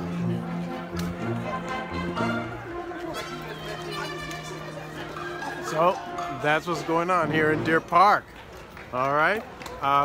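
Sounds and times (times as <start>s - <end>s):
orchestra playing long held notes: 0.0s - 8.0s.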